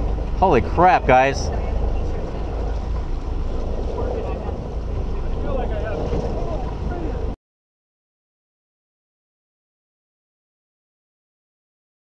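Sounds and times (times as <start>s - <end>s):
boat engines rumbling: 0.0s - 7.4s
faint voices: 0.4s - 7.4s.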